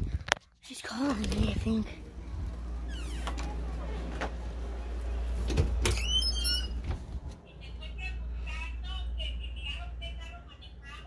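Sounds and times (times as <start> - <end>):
wavering squeak: 5.9 - 6.8.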